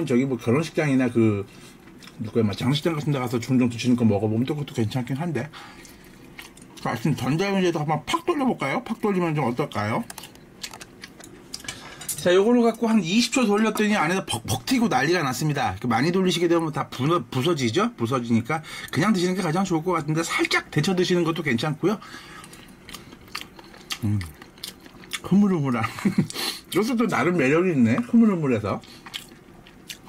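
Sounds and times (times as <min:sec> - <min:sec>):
person quietly chewing: 0:01.8 - 0:02.3, 0:05.8 - 0:06.9, 0:10.0 - 0:11.8, 0:22.4 - 0:25.3, 0:28.8 - 0:30.0.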